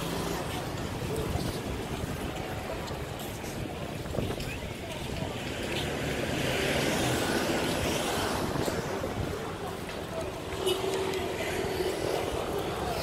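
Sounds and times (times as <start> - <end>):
murmur of voices: 0.0 - 13.0
traffic noise: 0.0 - 13.0.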